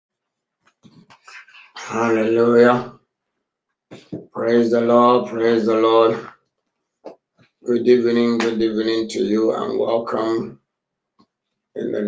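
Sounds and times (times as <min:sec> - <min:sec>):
man's loud voice: 0:01.8 - 0:03.0, 0:04.4 - 0:06.3.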